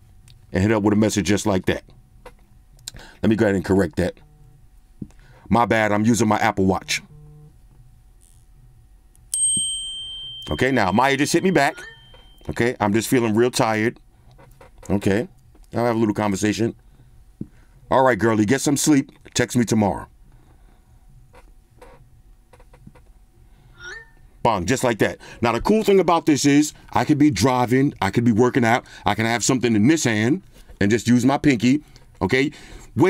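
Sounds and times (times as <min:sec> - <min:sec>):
bright message chime: 0:09.4 - 0:12.5.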